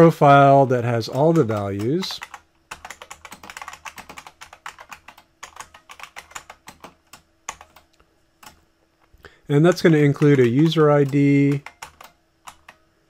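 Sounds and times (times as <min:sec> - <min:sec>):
typing on computer keyboard: 0:01.1 - 0:08.6, 0:09.7 - 0:12.8.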